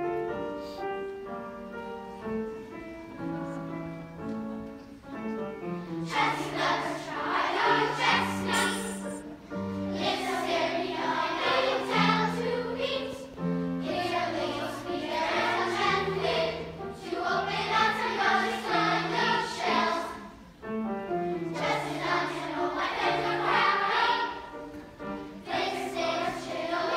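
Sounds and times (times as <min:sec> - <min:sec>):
piano accompaniment: 0:00.0 - 0:26.9
choir singing in harmony: 0:05.8 - 0:20.5, 0:21.4 - 0:26.9.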